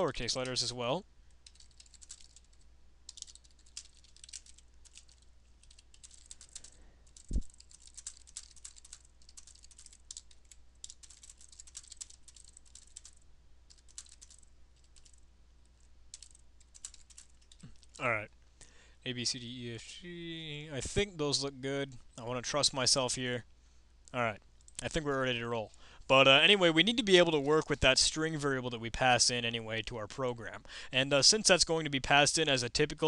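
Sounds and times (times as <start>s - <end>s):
typing on keyboard: 1.4s - 15.2s, 16.1s - 18.0s.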